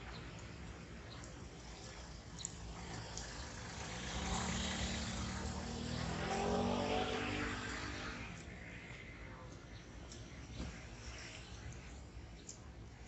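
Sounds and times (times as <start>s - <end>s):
vehicle accelerating past: 3.5s - 8.5s.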